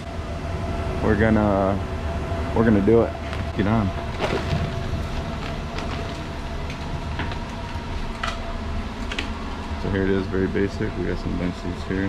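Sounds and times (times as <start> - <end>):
train rumbling and humming: 0.0 - 12.0.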